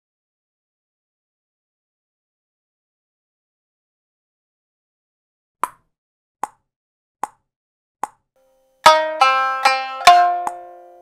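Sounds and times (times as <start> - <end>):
shamisen plucked notes: 8.8 - 11.0.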